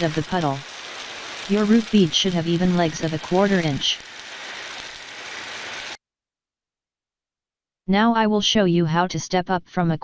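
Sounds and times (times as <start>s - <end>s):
welding arc crackling and hissing: 0.0s - 6.0s.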